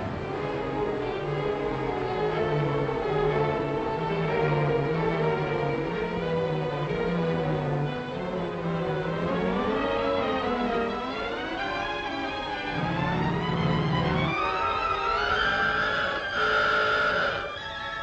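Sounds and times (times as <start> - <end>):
orchestral music led by strings: 0.0 - 18.0.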